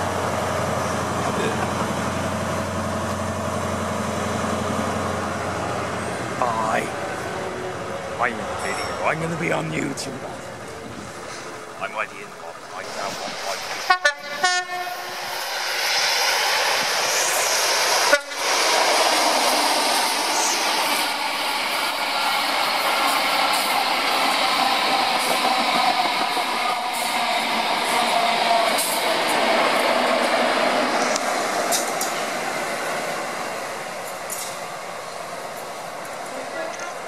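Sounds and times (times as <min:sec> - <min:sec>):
diesel train engine whine: 0:00.0 - 0:37.0
train wheel noise: 0:00.0 - 0:37.0.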